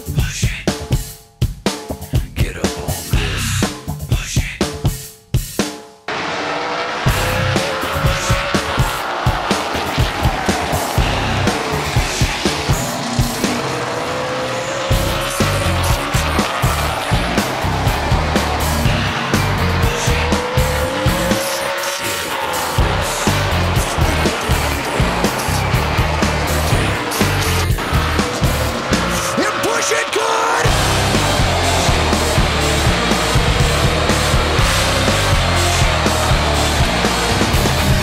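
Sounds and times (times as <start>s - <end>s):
music with drum beat: 0.0s - 6.1s, 7.1s - 13.7s, 14.9s - 21.5s, 22.5s - 29.3s, 30.6s - 38.0s
race car engines passing: 6.1s - 38.0s.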